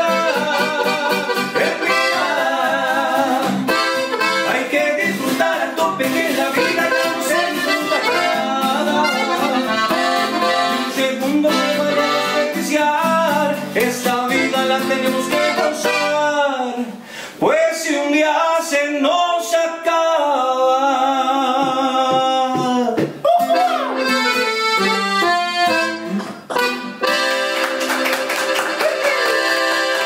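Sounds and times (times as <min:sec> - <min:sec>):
button accordion: 0:00.0 - 0:12.8, 0:14.3 - 0:16.3, 0:23.6 - 0:30.0
man singing: 0:00.0 - 0:24.2
acoustic guitar: 0:00.0 - 0:30.0.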